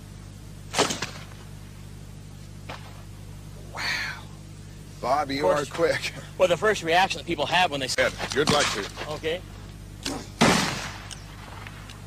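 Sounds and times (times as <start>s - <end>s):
steady low hum: 0.0s - 12.0s
person exclaiming: 3.7s - 4.4s.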